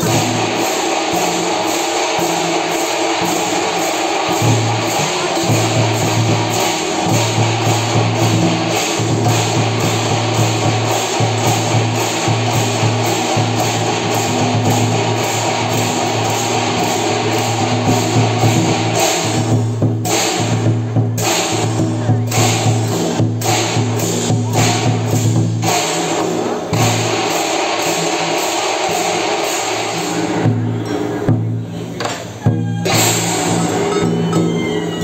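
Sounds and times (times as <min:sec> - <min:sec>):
gongs and cymbals clashing: 0:00.0 - 0:35.0.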